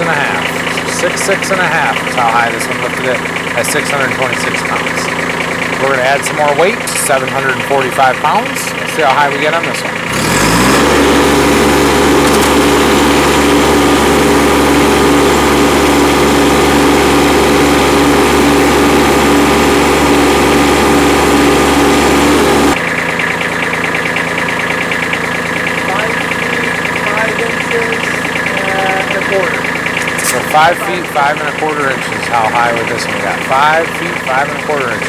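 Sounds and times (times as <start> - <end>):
tractor diesel engine running: 0.0 - 35.0.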